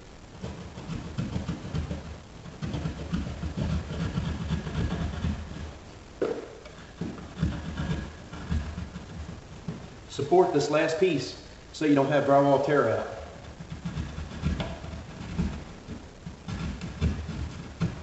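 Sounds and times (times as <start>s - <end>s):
hand saw cutting drywall: 0.5s - 5.7s, 6.8s - 9.3s, 13.4s - 18.0s.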